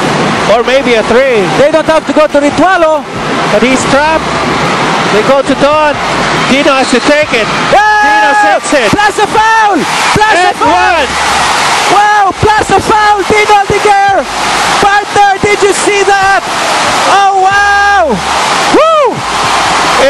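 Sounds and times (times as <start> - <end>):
arena crowd roaring and cheering: 0.0 - 20.0
commentator shouting excitedly: 5.2 - 11.1, 11.9 - 16.4, 17.0 - 18.2.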